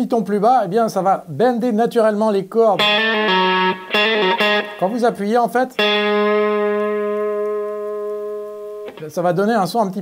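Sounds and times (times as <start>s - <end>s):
electric guitar note ringing: 2.8s - 9.2s.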